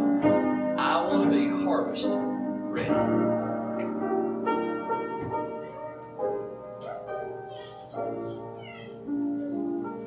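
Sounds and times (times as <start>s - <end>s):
keyboard playing slow hymn: 0.0s - 10.0s.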